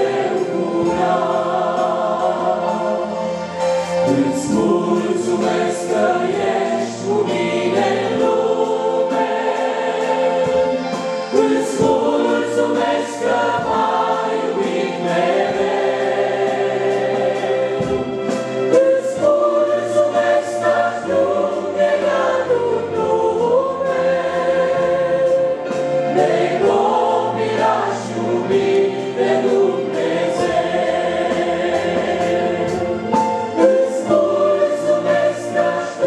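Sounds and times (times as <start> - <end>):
congregation singing a hymn: 0.0 - 36.0.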